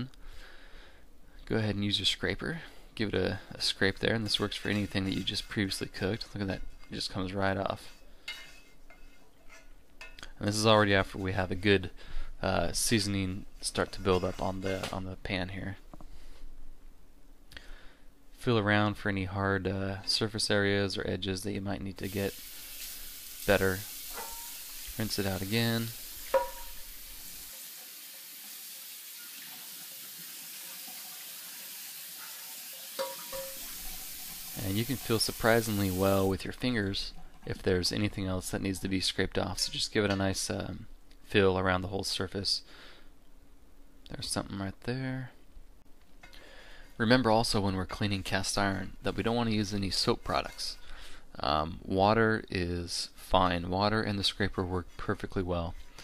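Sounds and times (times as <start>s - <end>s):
hand rubbing pan: 3.6s - 11.7s, 12.8s - 15.2s, 22.0s - 27.5s, 33.0s - 38.6s
plastic scraper rasping on skillet: 4.2s - 7.0s
tap water running into pan: 22.0s - 37.6s.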